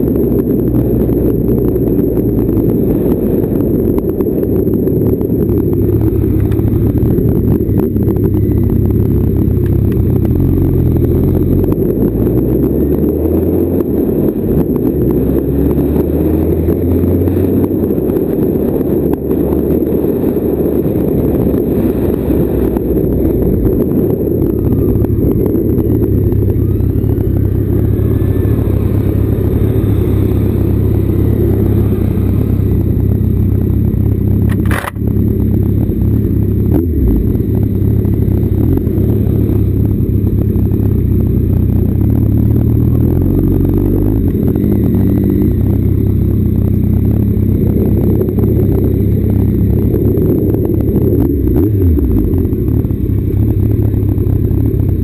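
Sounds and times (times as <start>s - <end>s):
motorcycle engine running: 0.0s - 55.0s
road rumble: 0.0s - 55.0s
wind on microphone: 0.0s - 55.0s.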